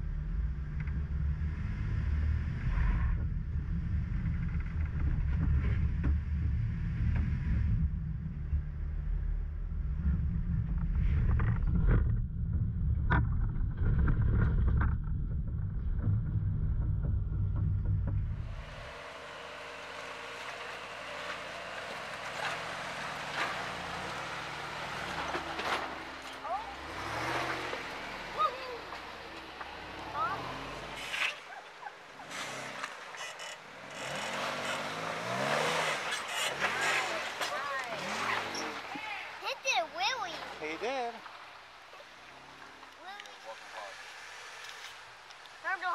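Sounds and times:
engine running low: 0.0 - 38.9
tyres grinding over rock: 18.4 - 31.4.

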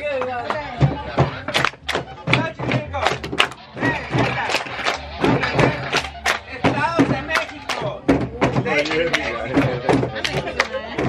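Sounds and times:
hands clapping in rhythm: 0.0 - 11.0
music: 0.0 - 11.0
voices: 0.0 - 11.0.

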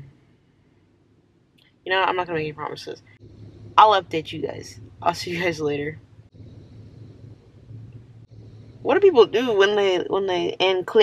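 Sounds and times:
low hum inside car cabin: 1.9 - 11.0.

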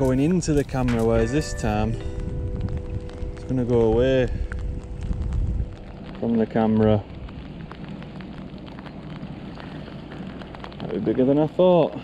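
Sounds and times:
rain falling: 0.0 - 12.0
raindrops tapping near microphone: 0.0 - 12.0.

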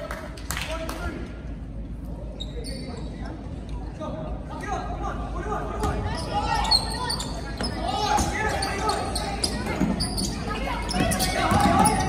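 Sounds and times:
players and spectators voices: 0.0 - 12.0.

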